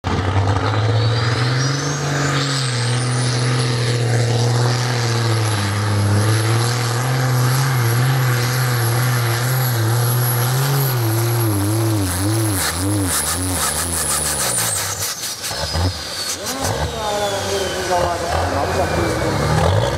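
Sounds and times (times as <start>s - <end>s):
diesel truck engine under load: 0.0s - 19.9s
high turbo whistle: 7.6s - 19.9s.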